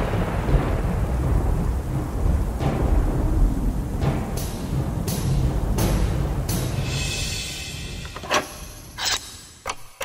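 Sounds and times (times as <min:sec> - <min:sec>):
thunder rumbling: 0:00.0 - 0:08.4
rain hissing: 0:00.0 - 0:09.0.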